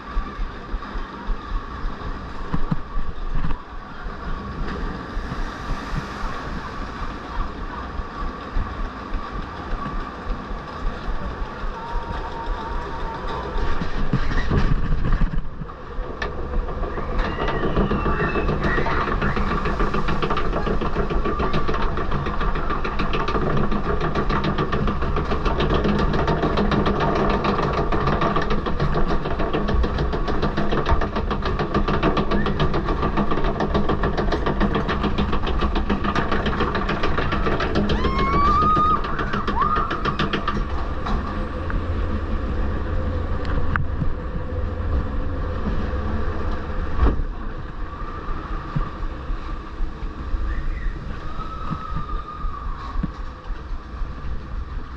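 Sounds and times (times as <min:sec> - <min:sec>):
steady low rumble: 0:00.0 - 0:54.9
lift conveyor clicking: 0:06.6 - 0:47.4.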